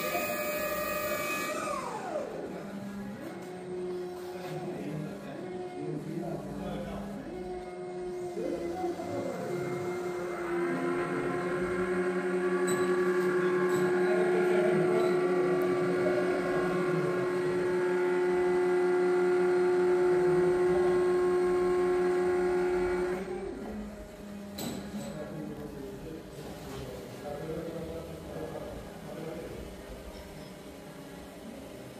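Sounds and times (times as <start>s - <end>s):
steady hydraulic whine: 0.0s - 31.9s.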